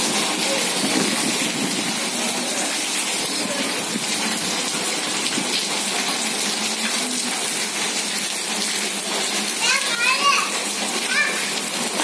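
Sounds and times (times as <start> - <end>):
heavy rain falling: 0.0 - 12.0.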